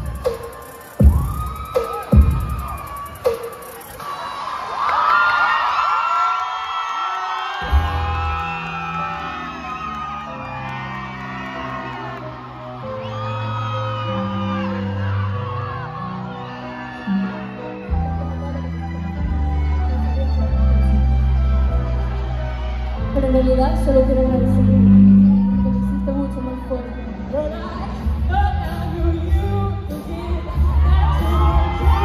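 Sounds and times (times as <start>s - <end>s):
loud dance music: 0.0s - 4.7s, 28.2s - 32.0s
audience cheering and whooping: 0.0s - 19.8s, 21.3s - 23.6s, 24.6s - 27.3s, 30.1s - 32.0s.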